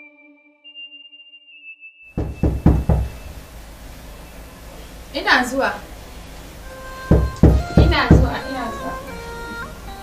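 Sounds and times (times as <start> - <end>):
knocks on a door: 2.2 - 3.4, 7.1 - 8.5.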